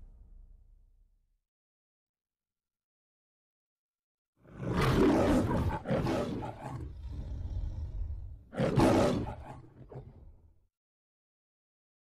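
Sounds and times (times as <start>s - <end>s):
lion roaring: 4.4s - 10.4s.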